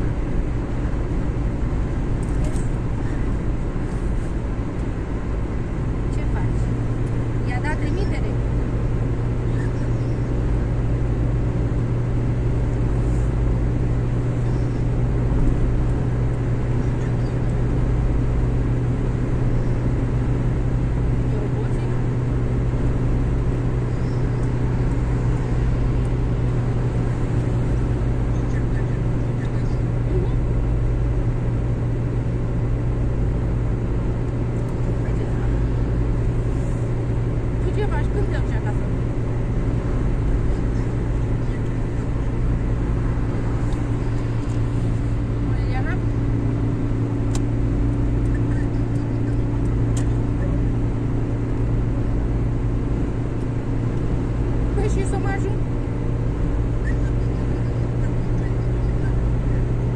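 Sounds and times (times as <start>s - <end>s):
car engine drone: 0.0s - 59.9s.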